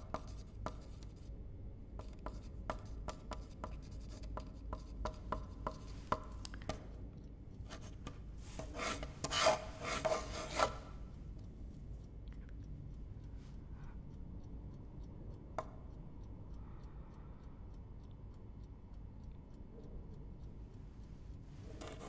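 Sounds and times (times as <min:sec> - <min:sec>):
pencil writing on paper: 0:00.0 - 0:01.3, 0:02.0 - 0:06.9, 0:07.6 - 0:11.1, 0:21.8 - 0:22.0
fast hard pencil scribbling: 0:07.7 - 0:10.9, 0:21.8 - 0:22.0.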